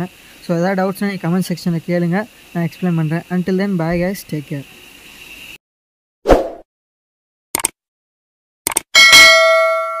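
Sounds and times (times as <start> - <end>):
brief clicks: 8.7 - 8.9
bell ding: 9.0 - 10.0.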